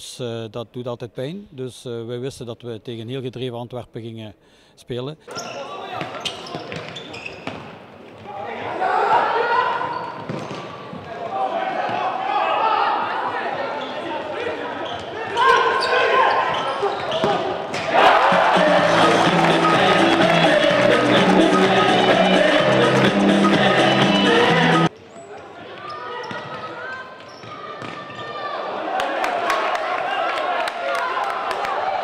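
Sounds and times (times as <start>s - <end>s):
echoing voices shouting: 11.2s - 24.9s
loud music over loudspeakers: 18.0s - 24.9s.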